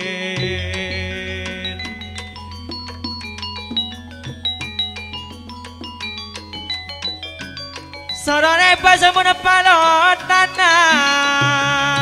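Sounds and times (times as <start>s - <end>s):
gamelan metallophones playing: 0.0s - 12.0s.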